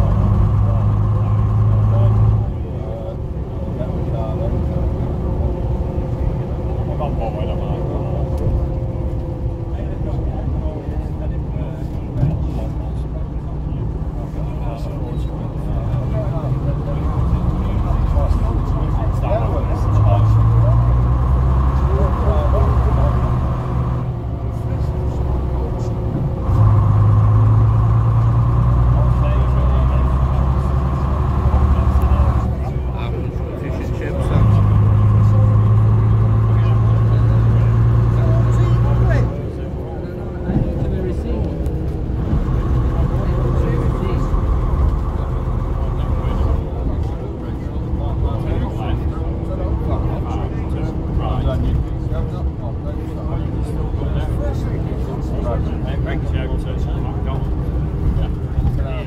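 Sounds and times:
diesel coach engine: 0:00.0 - 0:59.0.

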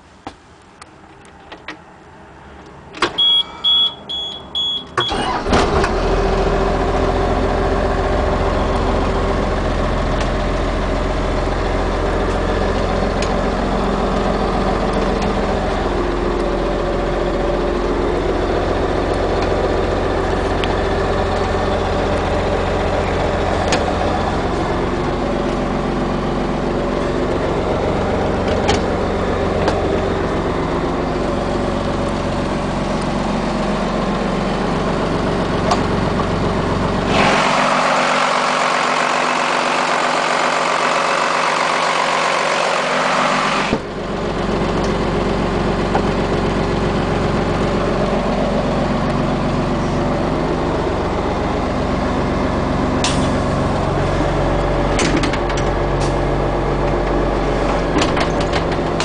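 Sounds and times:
diesel engine idling: 0:01.9 - 0:59.0.

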